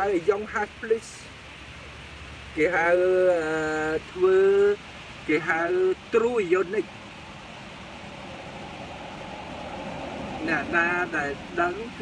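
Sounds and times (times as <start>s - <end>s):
man speaking: 0.0s - 1.3s, 2.6s - 6.9s, 10.4s - 12.0s
road traffic rush: 0.0s - 12.0s.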